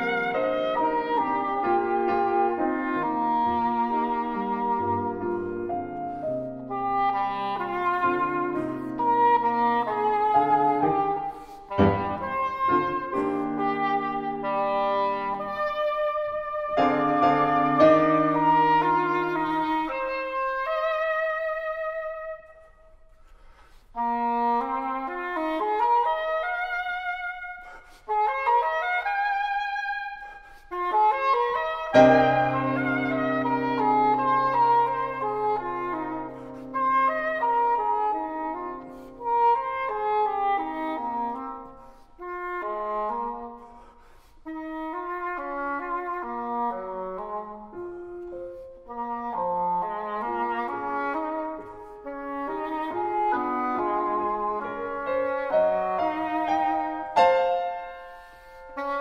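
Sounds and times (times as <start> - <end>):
english horn melody with vibrato: 0.0 - 59.0
grand piano: 0.0 - 59.0.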